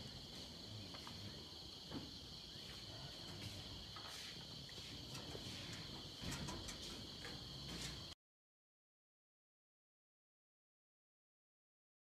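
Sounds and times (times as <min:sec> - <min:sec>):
insects chorus: 0:00.0 - 0:08.2.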